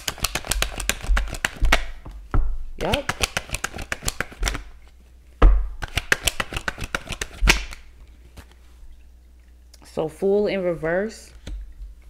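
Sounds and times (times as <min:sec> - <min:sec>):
cards being shuffled: 0:00.0 - 0:02.0, 0:02.8 - 0:05.0, 0:05.8 - 0:08.6.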